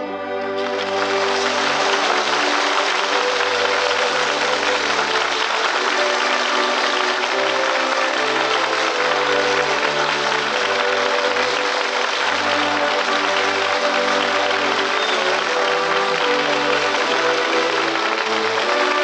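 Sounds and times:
audience clapping: 0.5 - 19.0.

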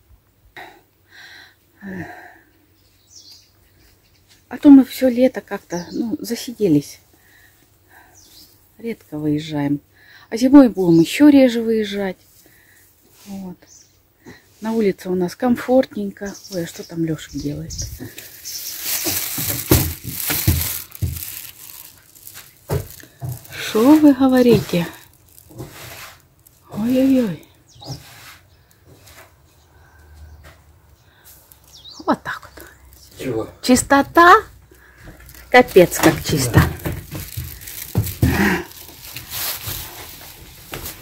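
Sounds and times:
broom sweeping wooden floor: 22.7 - 29.5.

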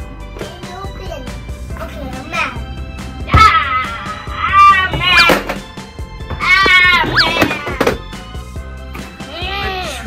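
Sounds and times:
background music: 0.0 - 10.0
cat-like meowing cries: 6.4 - 7.7.

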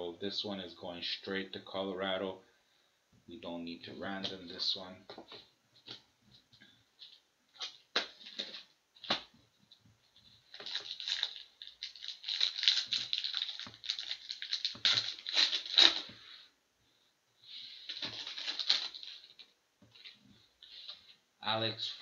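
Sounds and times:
foil wrapper tearing and crinkling: 10.5 - 16.2, 17.9 - 19.4.

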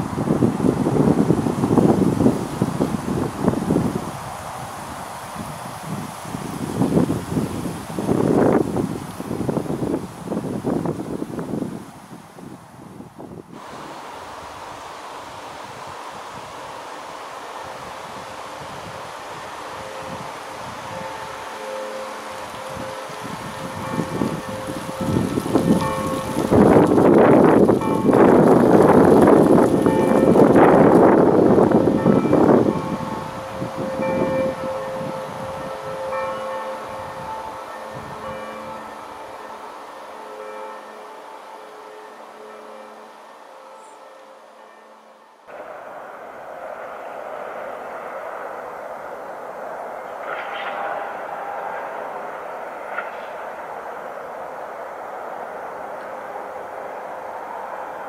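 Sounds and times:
outdoor background noise: 0.0 - 58.0.

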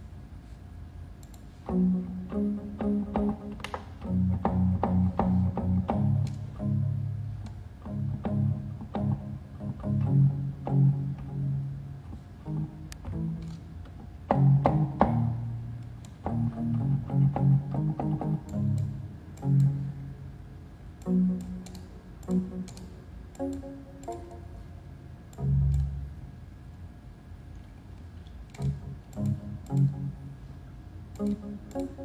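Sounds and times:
electronic keyboard low notes: 1.6 - 20.4, 21.0 - 26.4, 28.5 - 32.0.

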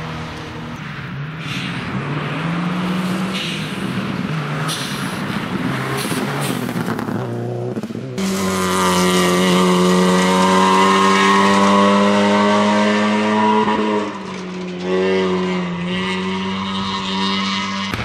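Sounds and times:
high-revving rally car engine: 0.0 - 18.0
rally car engine revving: 0.0 - 18.0.

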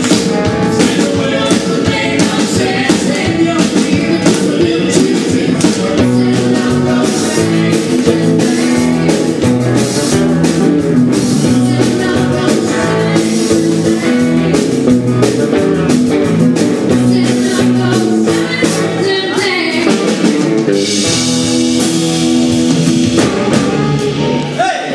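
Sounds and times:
drum kit steady beat: 0.0 - 24.9
electric bass: 0.0 - 24.9
electric guitar: 0.0 - 24.9
woman singing lead: 0.8 - 10.0, 11.2 - 15.0, 16.8 - 20.5.

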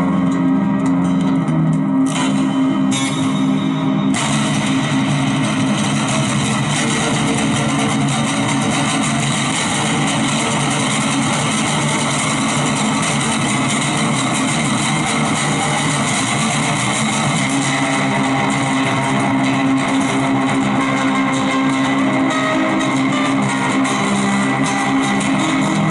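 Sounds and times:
acoustic guitar fast picking: 4.1 - 25.9.

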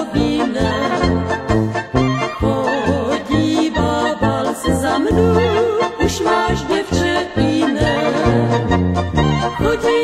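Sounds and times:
rhythmic bass accompaniment: 0.0 - 10.0
wavering folk melody: 0.0 - 10.0.

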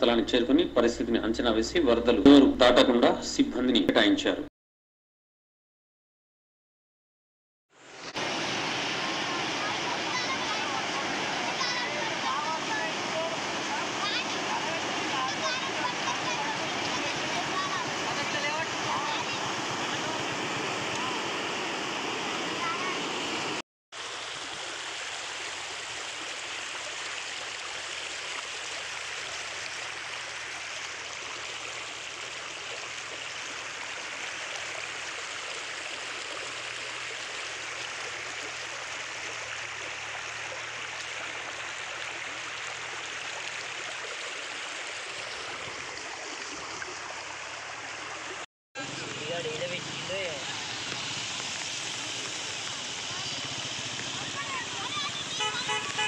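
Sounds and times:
floodwater rushing: 7.8 - 56.0.

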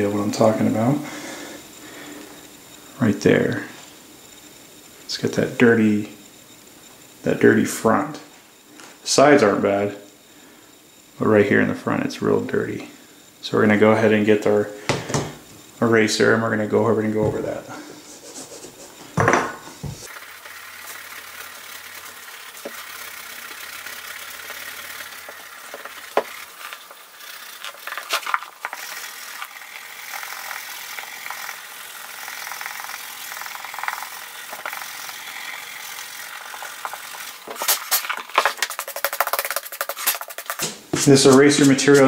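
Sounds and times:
eraser rubbing on suede: 18.0 - 19.1, 36.3 - 42.0.

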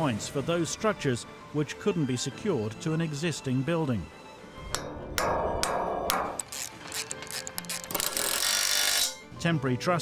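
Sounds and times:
hammer striking metal: 4.7 - 6.6.

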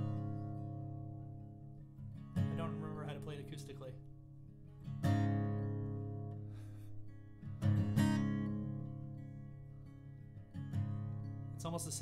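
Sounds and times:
acoustic guitar strummed chords: 0.0 - 12.0.

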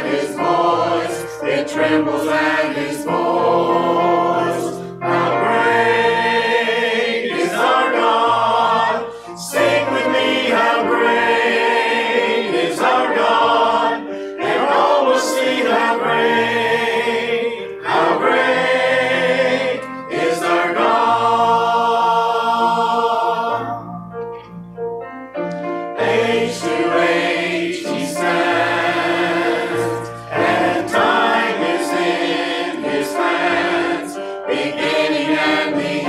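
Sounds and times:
choir singing a hymn: 0.0 - 23.9, 25.5 - 36.0
singers breathing: 9.0 - 9.4, 14.1 - 14.4.

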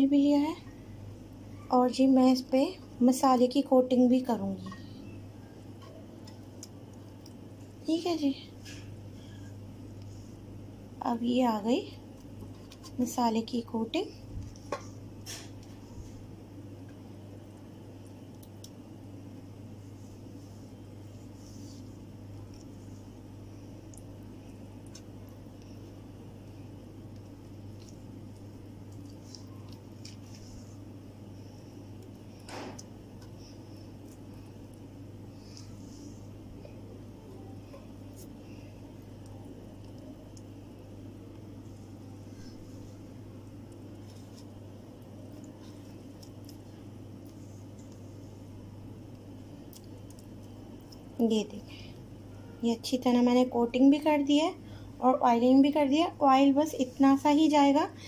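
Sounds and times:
steady low hum: 0.0 - 58.0
brush dabbing wet paste: 19.7 - 23.7.

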